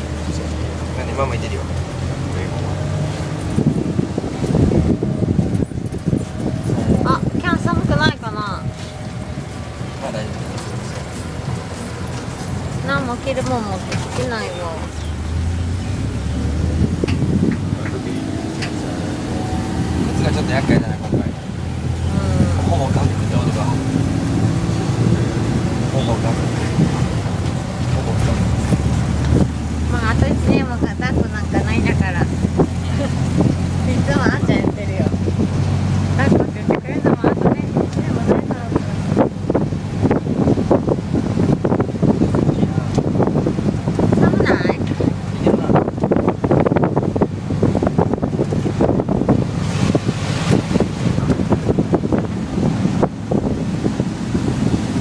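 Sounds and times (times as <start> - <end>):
auto-rickshaw engine running: 0.0 - 55.0
wind noise: 0.0 - 55.0.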